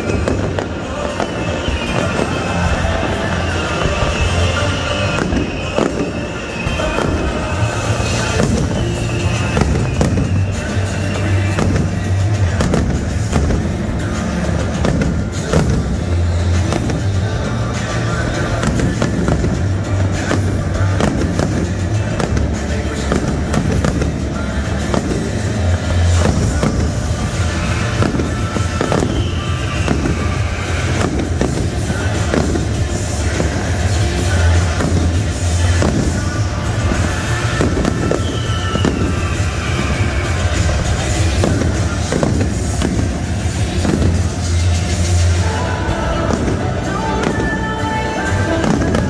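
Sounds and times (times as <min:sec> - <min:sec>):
fireworks booming and crackling: 0:00.0 - 0:49.0
music over loudspeakers: 0:00.0 - 0:49.0.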